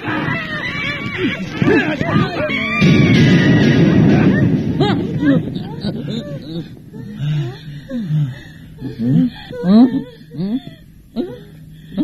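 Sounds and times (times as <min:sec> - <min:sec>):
man moaning and whimpering: 0:05.9 - 0:12.0.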